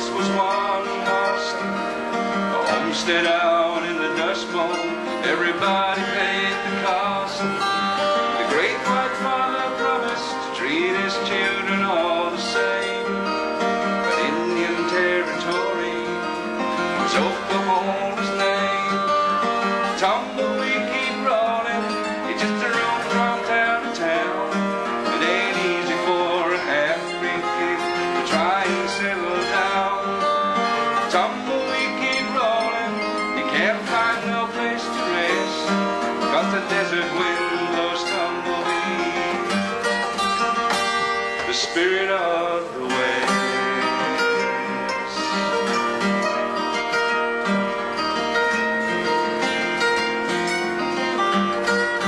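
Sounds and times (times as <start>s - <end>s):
man singing: 0.0s - 46.7s
acoustic guitar playing: 0.0s - 52.0s.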